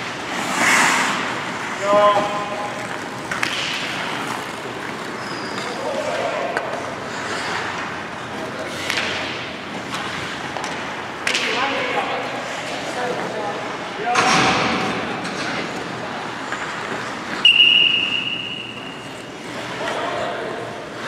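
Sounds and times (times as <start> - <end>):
skates scraping on ice: 0.0 - 13.7, 15.2 - 21.0
players' voices: 0.3 - 21.0
whistle blast: 17.4 - 19.0.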